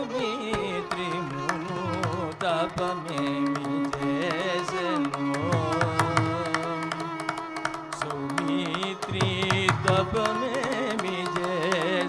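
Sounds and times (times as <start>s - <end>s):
man singing with wavering pitch: 0.0s - 12.0s.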